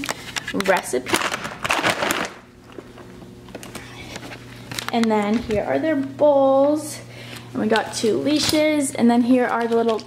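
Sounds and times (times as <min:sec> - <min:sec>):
plastic bag crinkling: 0:01.0 - 0:05.6.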